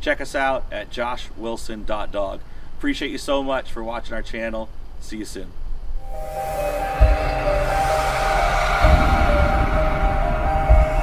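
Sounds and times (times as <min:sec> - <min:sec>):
deep boom: 0:06.0 - 0:11.0
heavy low rumble: 0:06.0 - 0:11.0
horn-like drone: 0:06.0 - 0:11.0.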